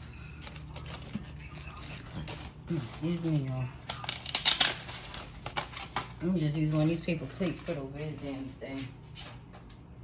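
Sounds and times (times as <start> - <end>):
paper plates rustling and scraping: 0.0 - 9.5.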